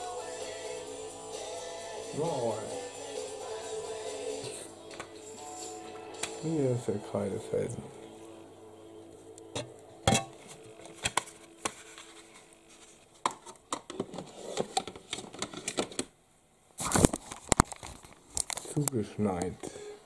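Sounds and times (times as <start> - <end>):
faint steady hum: 0.0 - 16.8
objects being handled: 9.5 - 16.1.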